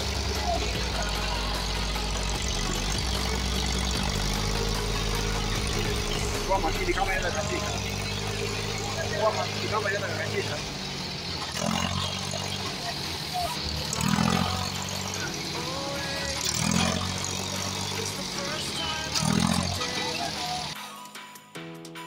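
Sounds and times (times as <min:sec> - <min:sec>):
tractor diesel engine revving: 0:00.0 - 0:20.8
people calling out: 0:00.0 - 0:20.9.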